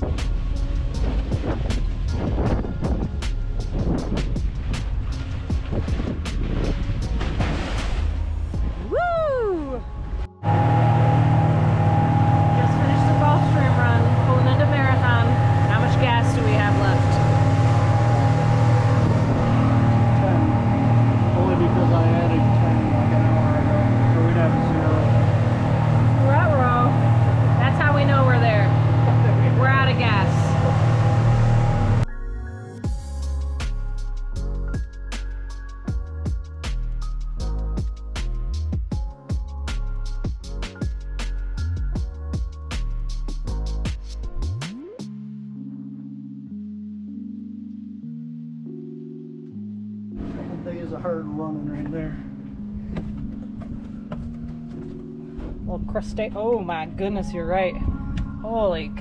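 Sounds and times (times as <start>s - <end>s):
background music with beat: 0.0s - 8.7s, 31.8s - 50.1s
boat engine droning: 0.0s - 59.0s
voices talking: 12.3s - 31.0s.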